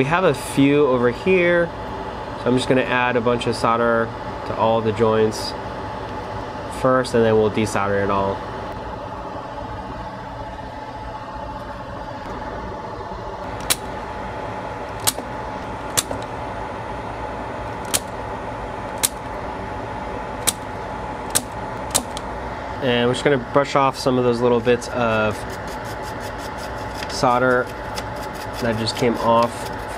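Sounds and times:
steady low hum: 0.0s - 29.9s
desolder pump snapping clicks: 15.9s - 16.3s, 17.8s - 18.1s, 18.9s - 19.3s, 20.4s - 20.6s, 21.3s - 22.3s.

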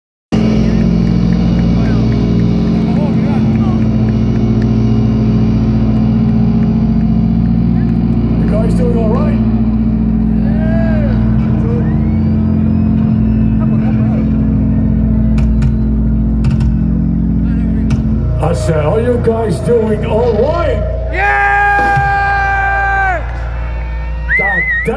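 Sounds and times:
loud droning amplified chord: 0.3s - 24.9s
crowd whistling: 0.4s - 24.9s
crowd shouting: 10.0s - 15.2s, 21.1s - 24.9s.

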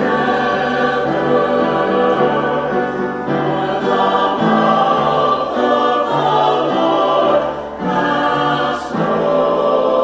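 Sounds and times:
choir singing: 0.0s - 10.0s
piano accompaniment: 0.0s - 10.0s.

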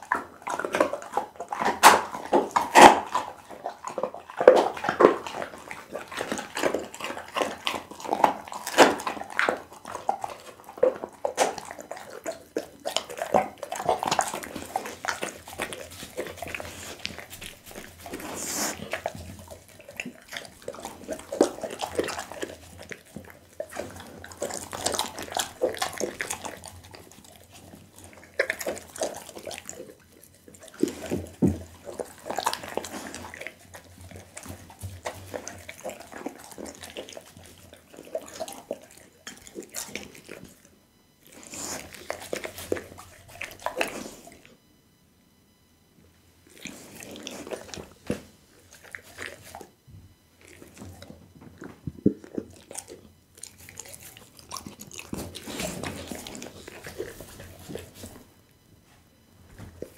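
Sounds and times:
dog licking: 0.0s - 44.6s, 46.4s - 58.4s
dog chewing wetly: 0.0s - 44.7s, 46.4s - 59.9s.

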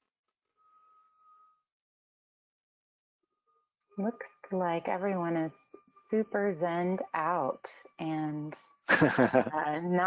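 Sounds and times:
faint steady high tone: 0.6s - 1.7s.

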